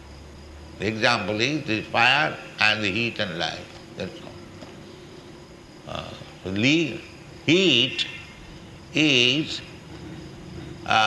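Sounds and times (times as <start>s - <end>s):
faint hum: 0.0s - 11.0s
recording hiss: 0.0s - 11.0s
man speaking: 0.8s - 4.4s, 5.9s - 8.3s, 9.0s - 9.8s.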